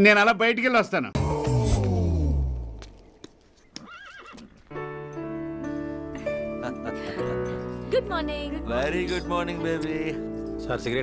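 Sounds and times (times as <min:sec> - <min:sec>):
horse whinnying: 0:03.8 - 0:04.7
background music: 0:04.6 - 0:11.0.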